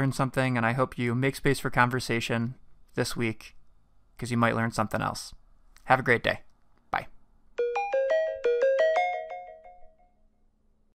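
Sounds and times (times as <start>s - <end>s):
bright ringing jingle notes: 7.6s - 10.3s.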